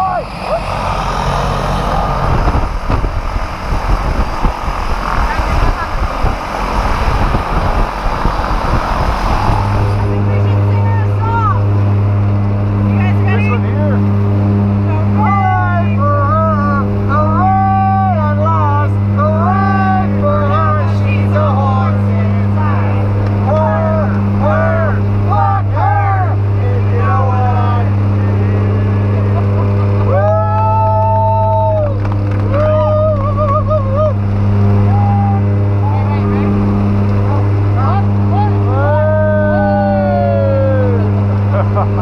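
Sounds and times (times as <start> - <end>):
plane engines droning: 0.0 - 42.0
long drawn-out shouts: 23.5 - 27.9, 30.1 - 34.2, 37.9 - 41.1.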